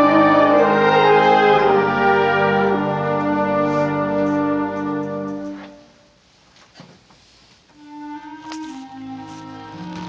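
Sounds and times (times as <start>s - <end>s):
concert band chord: 0.0s - 5.8s.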